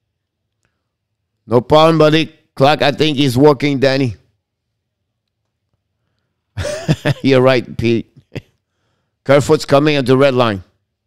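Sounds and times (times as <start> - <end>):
man laughing breathily: 6.6 - 7.3.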